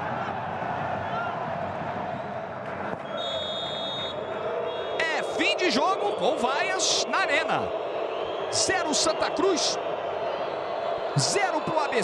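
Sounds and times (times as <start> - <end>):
stadium crowd noise: 0.0 - 12.0
referee's whistle blast: 3.0 - 4.2.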